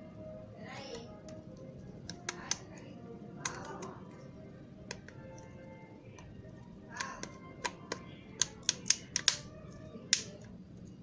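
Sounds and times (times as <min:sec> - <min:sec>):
faint background music: 0:00.0 - 0:11.0
plastic housing snapping clicks: 0:07.0 - 0:09.5.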